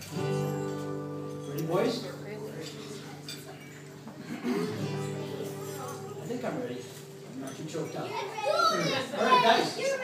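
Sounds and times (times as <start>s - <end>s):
amplified guitars holding a chord: 0.0s - 7.9s
murmuring voices: 1.5s - 10.0s.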